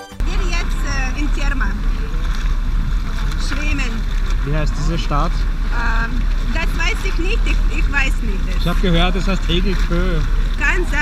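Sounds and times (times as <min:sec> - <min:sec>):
underwater jets churning water: 0:00.2 - 0:11.0.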